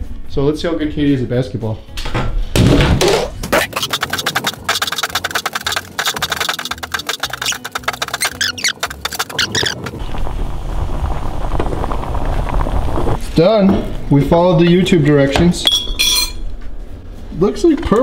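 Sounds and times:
fast beat music: 3.5s - 9.9s
rice boiling in a pot: 10.0s - 13.2s.

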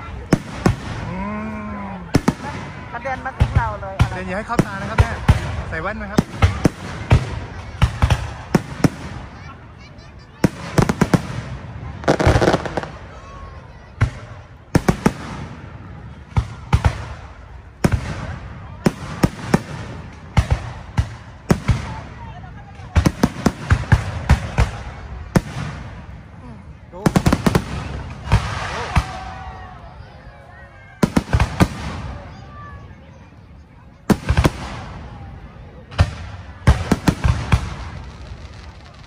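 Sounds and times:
fireworks bangs and crackles: 0.0s - 39.0s.

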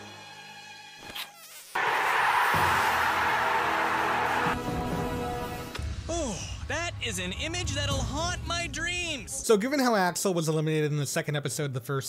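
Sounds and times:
background music: 0.0s - 1.2s, 1.8s - 9.5s.

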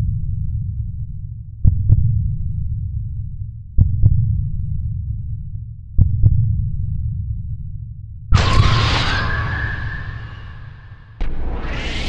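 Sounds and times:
deep heartbeat thumps: 1.6s - 3.1s, 3.7s - 7.3s.

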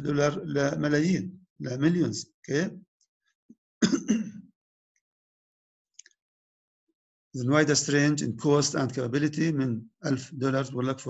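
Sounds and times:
man clearing throat: 3.8s - 4.4s.

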